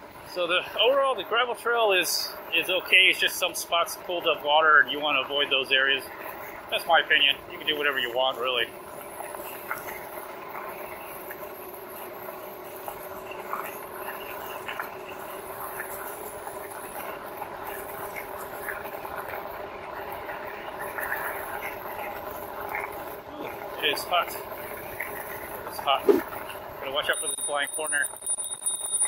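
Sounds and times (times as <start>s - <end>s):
electric bike motor hum: 0.0s - 29.0s
bike rattles and ticks: 26.8s - 29.0s.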